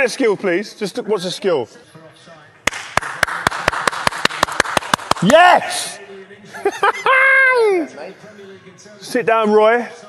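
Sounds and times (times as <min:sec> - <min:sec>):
man clapping hands: 0:02.7 - 0:05.4.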